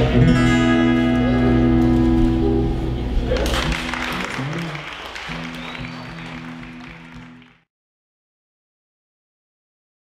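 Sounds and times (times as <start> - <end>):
audience applause: 3.3 - 7.7.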